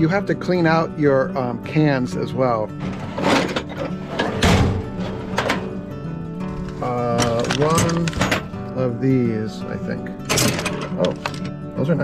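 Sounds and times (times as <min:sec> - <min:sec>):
background music: 0:00.0 - 0:12.0
metal drawer sliding open: 0:02.7 - 0:05.8, 0:10.3 - 0:11.1
wrenches clinking: 0:06.6 - 0:08.5.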